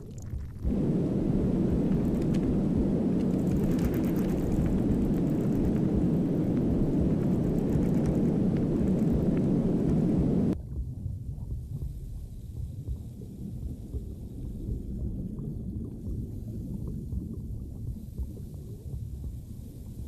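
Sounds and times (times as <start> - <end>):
low rumbling rush with crackle: 0.0 - 20.0
quiet low rumble: 0.0 - 20.0
faint scattered clicks: 3.2 - 10.0.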